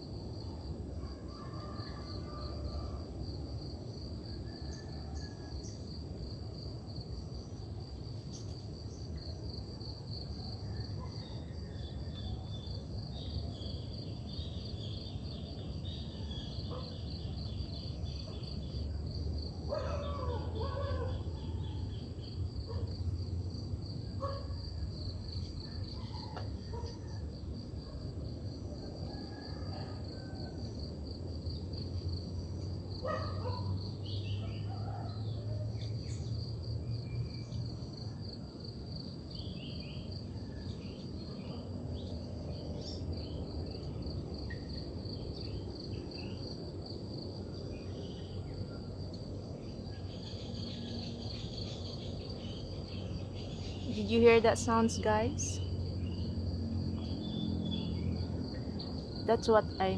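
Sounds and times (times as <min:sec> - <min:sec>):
insects trilling: 0:00.0 - 0:59.9.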